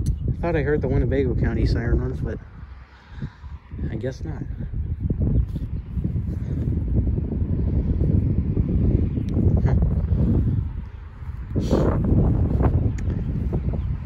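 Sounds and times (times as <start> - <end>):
wind buffeting microphone: 0.0 - 14.0
footsteps on dry grass: 5.4 - 6.8.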